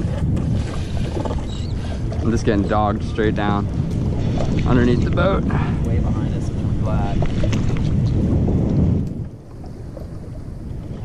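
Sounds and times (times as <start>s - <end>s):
boat rumbling on water: 0.0s - 11.0s.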